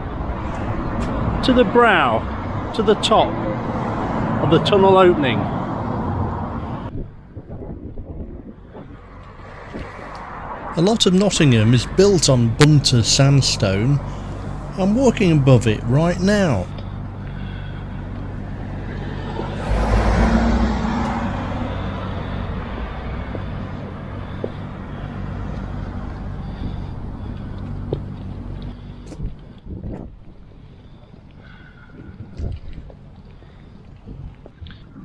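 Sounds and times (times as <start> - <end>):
vehicle passing loudly: 0.0 - 7.3, 8.7 - 29.9
vehicle engine humming: 0.0 - 35.0.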